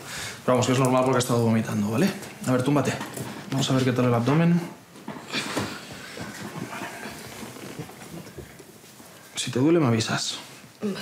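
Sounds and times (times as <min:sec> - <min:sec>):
clothing rustling: 0:04.8 - 0:09.5
small irregular crackles: 0:05.9 - 0:09.6.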